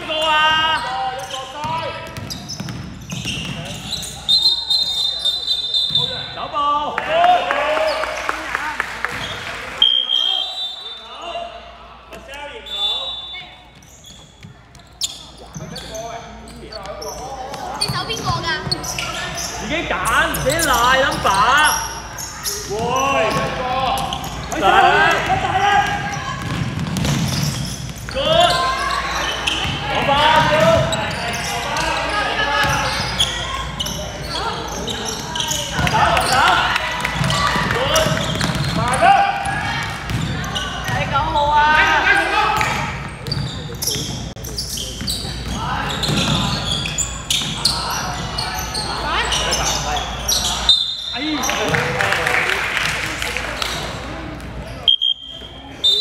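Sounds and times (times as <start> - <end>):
voices shouting in gymnasium: 0.0 - 56.0
basketball bouncing on court: 1.6 - 3.9, 17.5 - 19.0, 25.1 - 28.6, 29.4 - 31.3, 35.4 - 41.3, 42.6 - 47.6.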